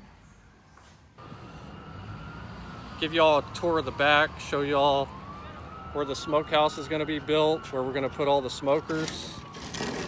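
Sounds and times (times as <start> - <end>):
distant road traffic rumble: 0.1 - 10.0.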